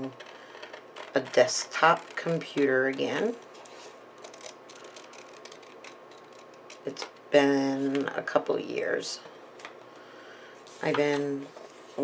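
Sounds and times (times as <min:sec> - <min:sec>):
scissors snipping paper: 0:00.0 - 0:03.4, 0:04.2 - 0:07.1.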